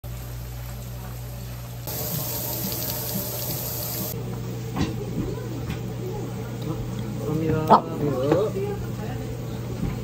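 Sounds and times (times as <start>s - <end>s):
meat sizzling on a grill pan: 1.9s - 4.2s.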